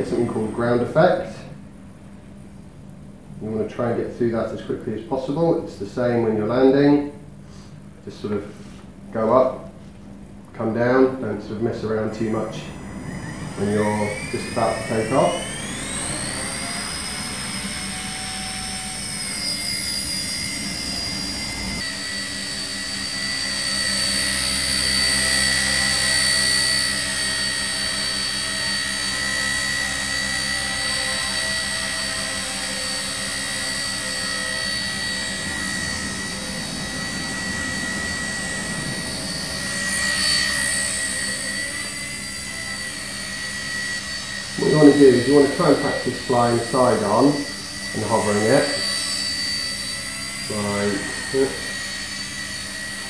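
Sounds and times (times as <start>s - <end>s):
rc helicopter hovering: 0.0s - 1.7s, 11.0s - 53.0s.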